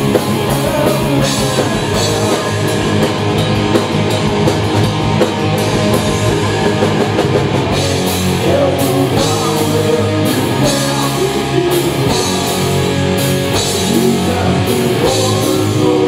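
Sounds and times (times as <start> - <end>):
bass guitar: 0.0 - 16.0
drum kit: 0.0 - 16.0
electric guitars: 0.0 - 16.0.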